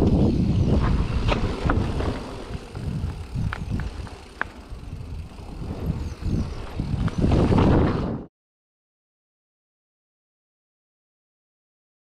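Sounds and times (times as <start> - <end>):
bike clicks and rattles: 0.0 - 8.3
bike tyre rumble on dirt: 0.0 - 8.3
wind on microphone: 0.0 - 8.3.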